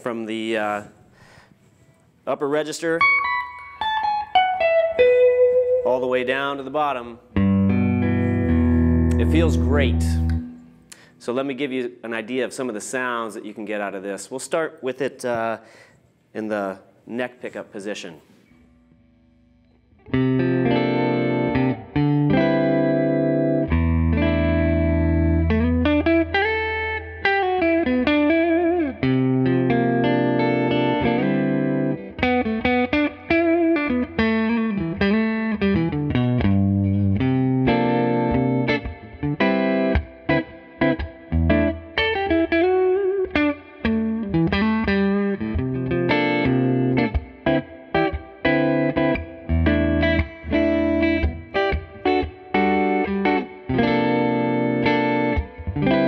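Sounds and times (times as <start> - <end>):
electric guitar playing: 3.0 - 11.1, 18.6 - 56.0.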